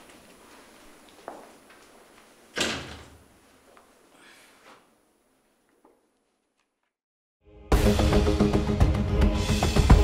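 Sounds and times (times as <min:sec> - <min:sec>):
door shutting: 0:02.6 - 0:03.3.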